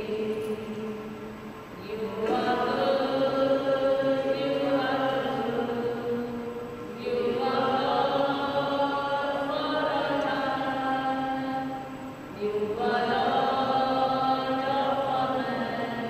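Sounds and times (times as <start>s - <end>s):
slow hymn sung in long notes: 0.0s - 16.0s.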